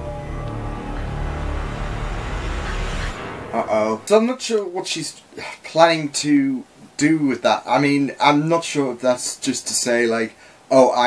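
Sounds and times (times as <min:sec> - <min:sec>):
low rumbling drone: 0:00.0 - 0:04.2.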